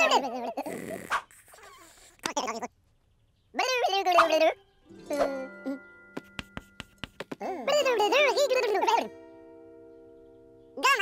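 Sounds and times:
cartoon character babble: 10.8 - 11.0.

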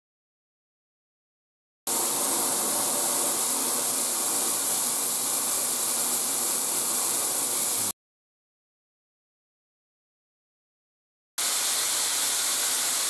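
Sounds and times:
shower spraying into a bathtub: 1.9 - 8.0, 11.4 - 13.0.

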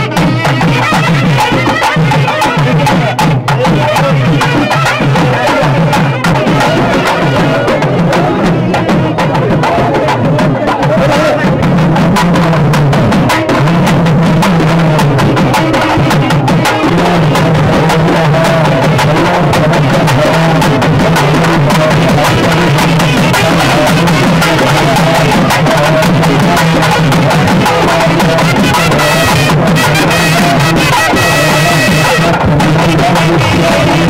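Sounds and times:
barrel drums played fast: 0.0 - 34.0.

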